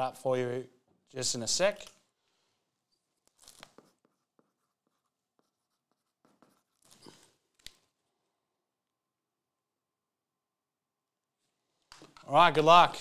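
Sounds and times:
faint rustles and scrapes: 0:02.8 - 0:07.5.

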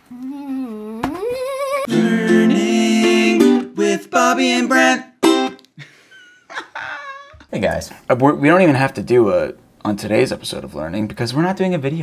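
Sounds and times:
man humming: 0:01.8 - 0:05.2.

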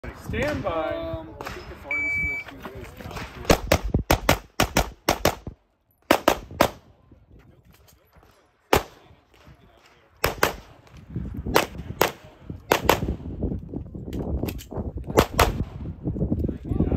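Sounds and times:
shot timer beep: 0:01.9 - 0:02.5.

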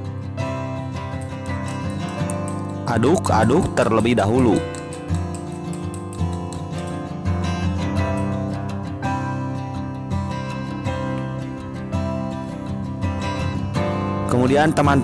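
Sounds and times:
strummed acoustic guitar chords: 0:00.0 - 0:14.3.

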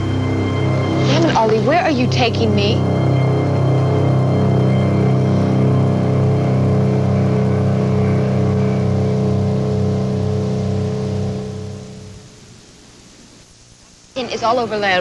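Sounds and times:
low drone of sustained tones: 0:00.0 - 0:12.7
fainter higher tones: 0:00.0 - 0:13.5.

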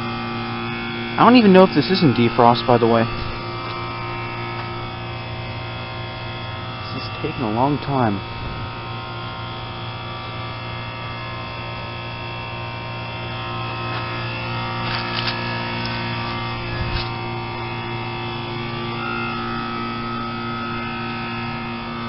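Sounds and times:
heat pump electrical hum: 0:00.0 - 0:22.0
higher steady tone: 0:00.0 - 0:22.0.

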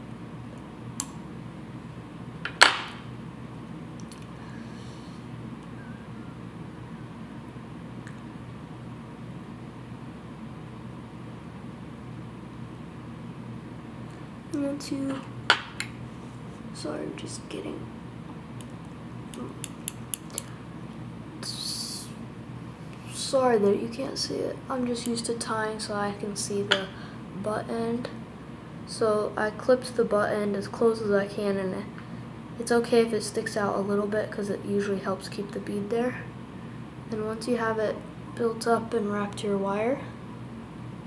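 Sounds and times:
steady low hum: 0:00.0 - 0:41.0
scissors snipping wire: 0:19.3 - 0:20.5.

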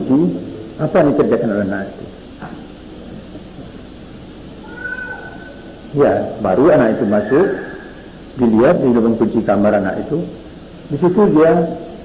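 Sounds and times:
recording hiss: 0:00.0 - 0:12.0
faint high-pitched call: 0:04.6 - 0:05.7, 0:06.6 - 0:08.2.

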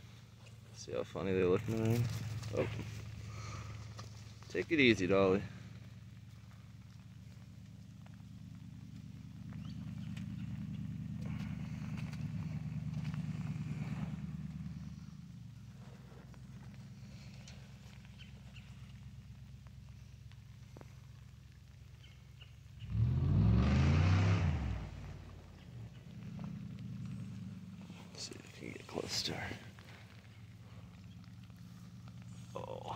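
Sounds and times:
distant motor vehicle drone: 0:01.2 - 0:32.9.

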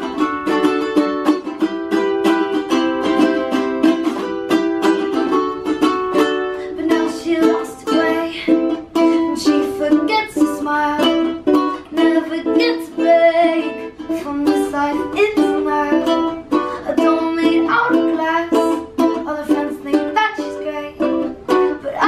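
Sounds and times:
girl singing: 0:00.0 - 0:22.0
ukuleles strumming chords: 0:00.0 - 0:22.0.

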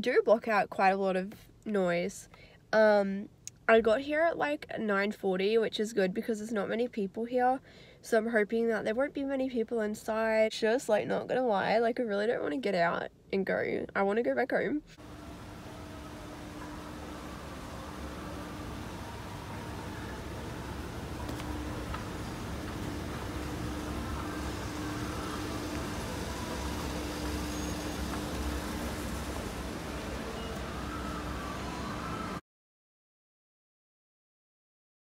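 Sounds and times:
faint hum: 0:14.9 - 0:32.4
escalator rumbling: 0:15.0 - 0:32.4.

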